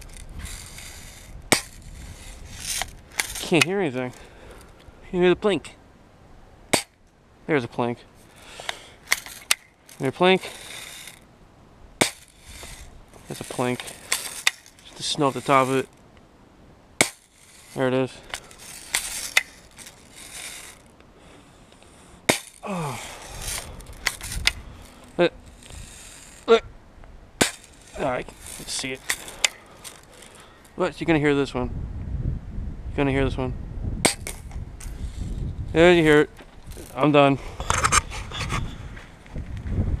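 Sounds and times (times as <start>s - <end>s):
phone microphone handling noise: 0.0s - 4.9s, 12.0s - 16.1s, 17.0s - 26.7s, 27.4s - 30.8s, 34.0s - 40.0s.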